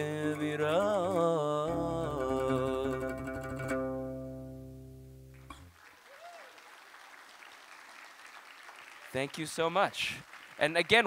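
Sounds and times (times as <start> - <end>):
audience applauding: 5.3 - 11.0.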